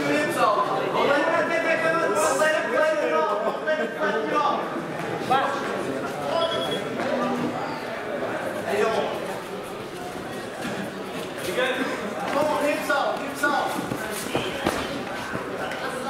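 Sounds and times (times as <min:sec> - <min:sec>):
people talking and calling out: 0:00.0 - 0:16.0.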